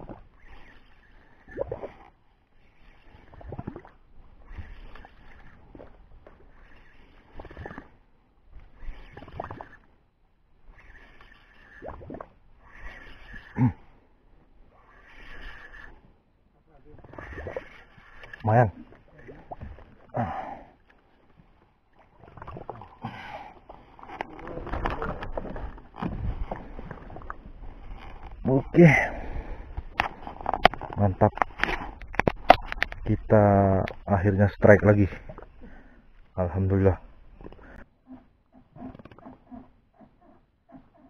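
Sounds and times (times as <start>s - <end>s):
water sloshing against boat: 16.8s - 33.0s.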